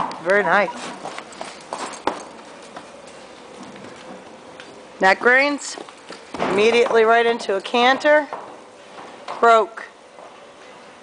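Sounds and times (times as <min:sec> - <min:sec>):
horse hoofbeats on dirt: 0:05.1 - 0:08.7.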